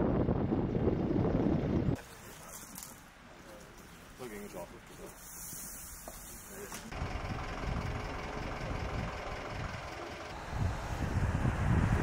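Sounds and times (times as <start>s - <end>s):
wind buffeting microphone: 0.0s - 2.0s, 7.3s - 12.0s.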